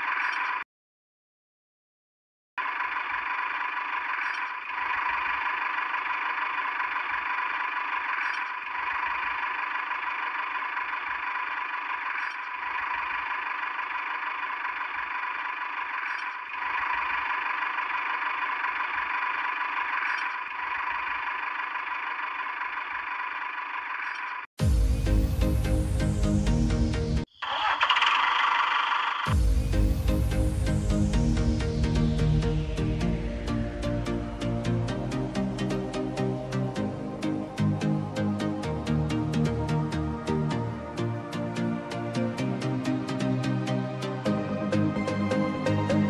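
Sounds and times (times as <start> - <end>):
plow pulling through sand: 2.6 - 24.4
small electric motor whirring: 2.7 - 24.5.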